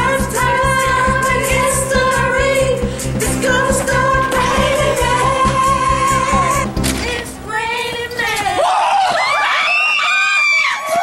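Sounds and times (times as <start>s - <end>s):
young women screaming and squealing: 8.2s - 11.0s.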